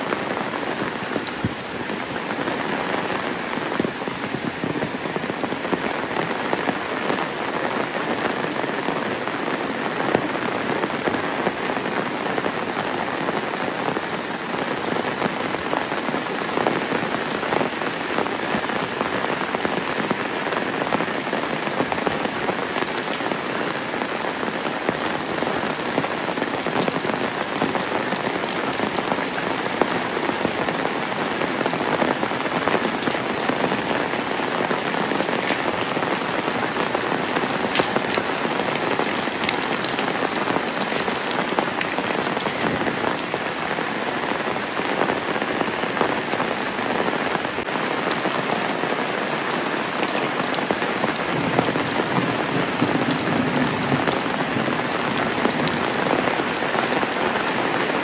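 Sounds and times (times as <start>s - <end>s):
raindrops pattering: 0.0s - 58.0s
steady rain hiss: 0.0s - 58.0s.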